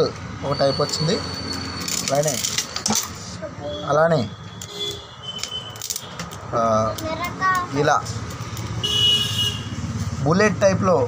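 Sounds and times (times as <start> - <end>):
low traffic rumble: 0.0 - 11.0
vehicle horn toot: 3.7 - 5.8, 8.8 - 9.8.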